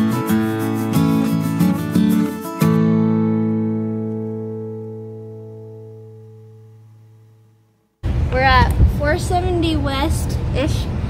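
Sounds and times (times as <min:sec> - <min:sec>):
acoustic guitar music: 0:00.0 - 0:07.9
woman speaking: 0:08.3 - 0:10.9.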